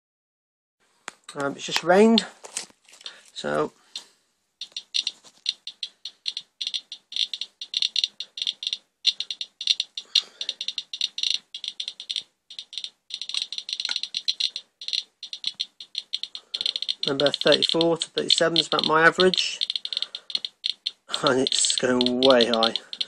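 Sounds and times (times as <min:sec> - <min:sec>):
geiger counter clicking rapidly: 0:04.6 - 0:23.0.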